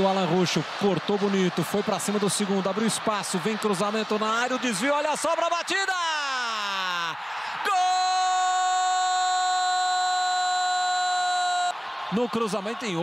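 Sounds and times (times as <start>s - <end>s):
commentator shouting goal cry: 0.0s - 13.0s.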